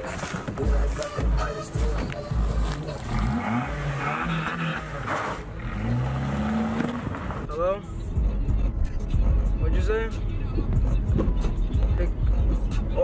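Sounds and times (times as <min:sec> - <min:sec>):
car engine revving: 0:00.8 - 0:07.6.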